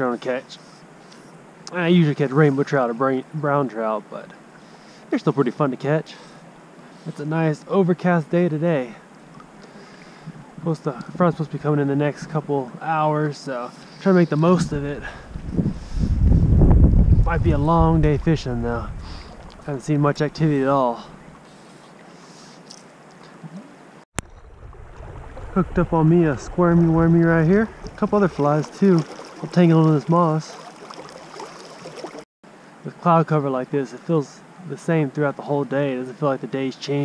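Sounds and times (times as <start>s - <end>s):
man talking: 0.0s - 0.7s, 1.7s - 4.4s, 5.1s - 6.3s, 7.0s - 9.0s, 10.6s - 15.2s, 17.2s - 21.2s, 25.6s - 30.6s, 32.9s - 37.0s
river water flowing: 6.1s - 10.6s, 19.0s - 32.9s
wind buffeting microphone: 14.4s - 21.4s, 24.2s - 29.6s.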